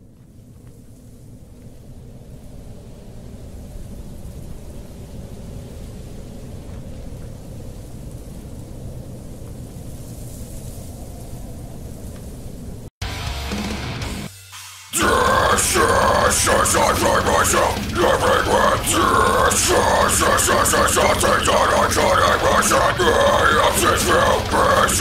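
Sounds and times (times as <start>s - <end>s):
dense low rumble: 15.0s - 25.0s.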